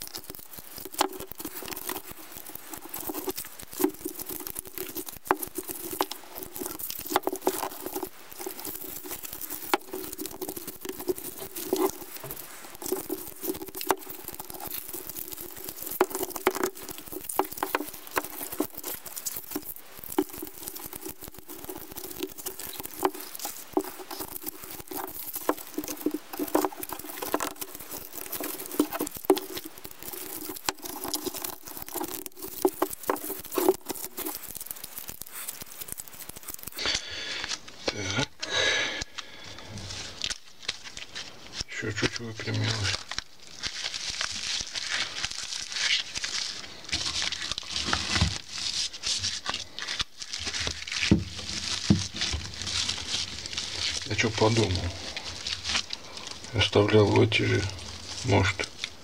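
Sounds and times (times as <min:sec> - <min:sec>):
broom bristles crackling and rustling: 0:00.0 - 0:59.0
small irregular clicks: 0:00.0 - 0:59.0.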